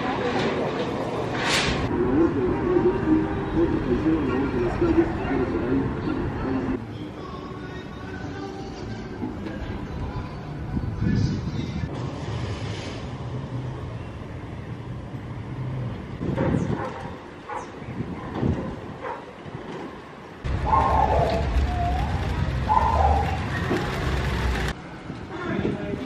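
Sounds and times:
traffic hum: 0:00.0 - 0:26.0.

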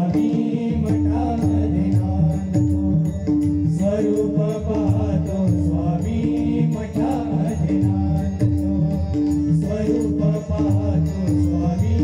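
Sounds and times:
chorus voices singing: 0:00.0 - 0:12.0
hand drums steady rhythm: 0:00.0 - 0:12.0
harmonium: 0:00.0 - 0:12.0.

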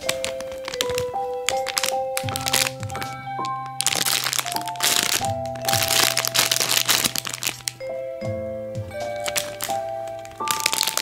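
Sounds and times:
plastic packaging crinkling: 0:00.0 - 0:08.0, 0:09.0 - 0:11.0
background music: 0:00.0 - 0:11.0.

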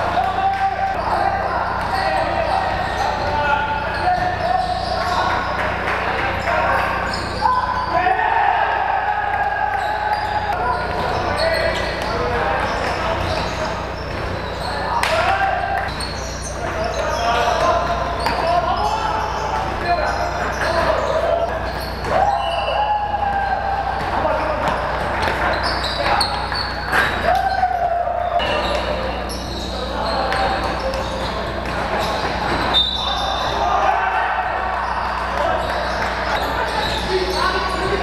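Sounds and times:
players calling and shouting: 0:00.0 - 0:38.0.

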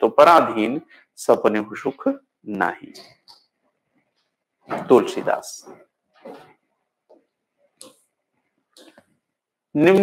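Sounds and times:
man lecturing: 0:00.0 - 0:03.4, 0:04.7 - 0:05.9, 0:09.7 - 0:10.0.

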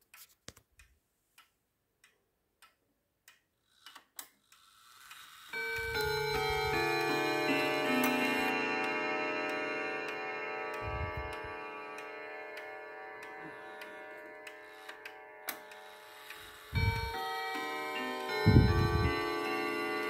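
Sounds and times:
wall clock ticking: 0:00.0 - 0:20.0
clock chime melody: 0:05.0 - 0:20.0.

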